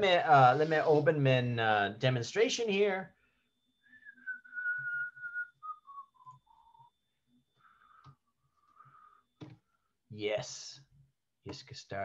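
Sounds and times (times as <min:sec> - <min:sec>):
man whistling: 0:03.8 - 0:07.1.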